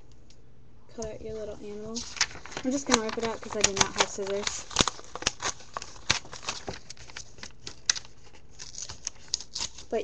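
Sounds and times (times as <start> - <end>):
paper tearing and crinkling: 1.8 - 10.0.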